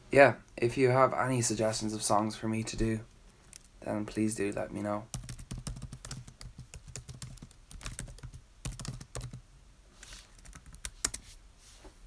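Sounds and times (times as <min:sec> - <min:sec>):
typing on computer keys: 0:05.1 - 0:09.4, 0:10.4 - 0:11.2.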